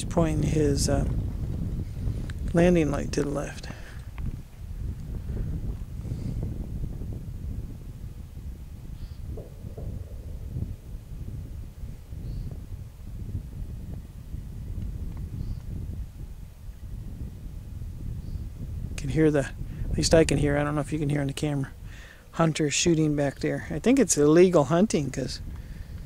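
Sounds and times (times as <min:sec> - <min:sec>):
wind rumble on microphone: 0:00.0 - 0:26.0.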